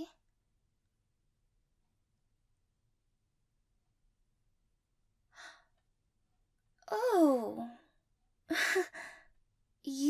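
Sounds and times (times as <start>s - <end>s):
woman breathing: 8.5s - 9.4s.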